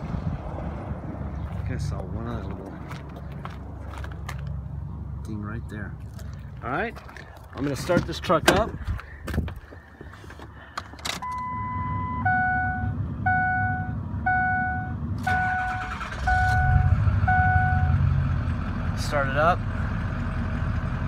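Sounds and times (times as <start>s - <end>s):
diesel engine starting and idling: 10.4s - 21.0s
warning chimes: 11.3s - 18.0s.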